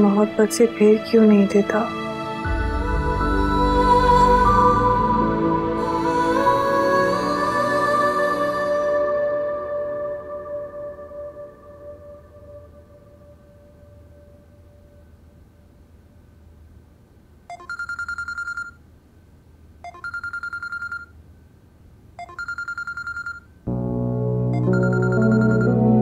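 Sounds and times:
background music: 0.0 - 15.1, 23.7 - 26.0
phone trilling ringtone: 17.5 - 18.8, 19.8 - 21.1, 22.2 - 23.5, 24.5 - 26.0.

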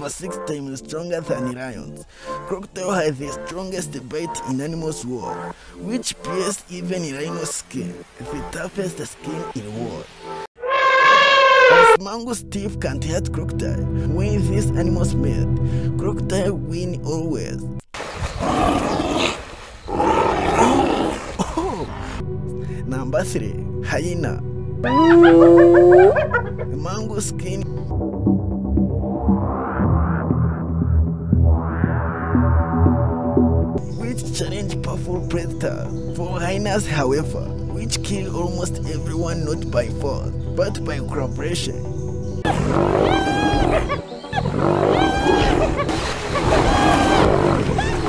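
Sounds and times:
animal growling: 18.4 - 22.2, 42.5 - 48.0
hyenas giggling: 21.1 - 22.2, 24.8 - 26.8, 42.5 - 48.0.

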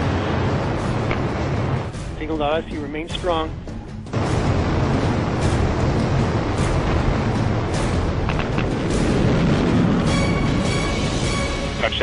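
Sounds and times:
dramatic soundtrack music: 0.0 - 12.0.

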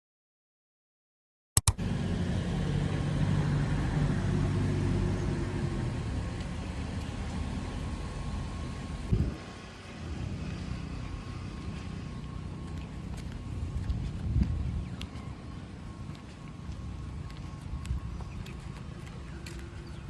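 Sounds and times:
vehicle engine rumbling: 1.7 - 20.0.

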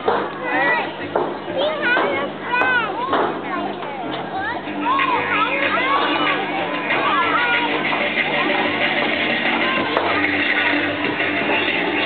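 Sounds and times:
children talking and calling: 0.0 - 12.0.

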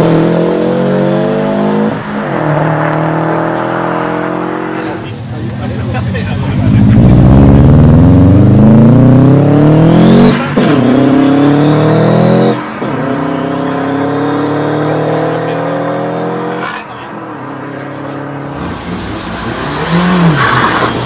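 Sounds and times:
car engine revving hard: 0.0 - 21.0.

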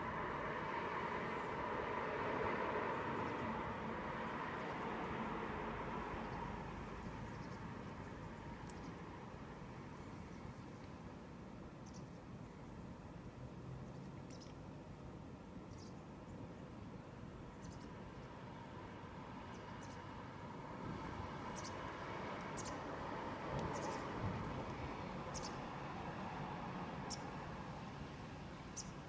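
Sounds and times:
small bird chirping: 14.2 - 14.6, 21.5 - 21.8, 22.6 - 22.8, 23.7 - 24.1, 25.3 - 25.6, 28.7 - 29.0.

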